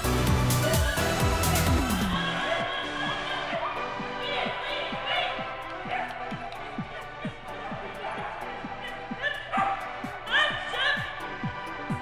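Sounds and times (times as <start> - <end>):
background music with beat: 0.0 - 12.0
dog barking: 9.2 - 11.1.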